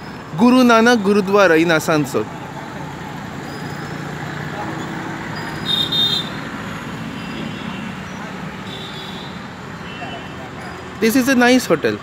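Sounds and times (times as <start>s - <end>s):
street traffic: 0.0s - 12.0s
vehicle horn: 5.6s - 6.4s, 8.6s - 10.4s.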